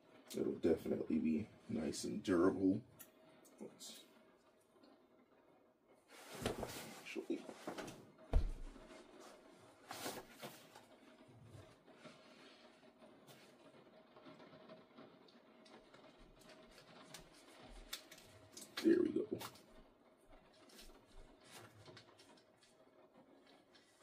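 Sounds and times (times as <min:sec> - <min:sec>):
thump: 0:08.3 - 0:08.7.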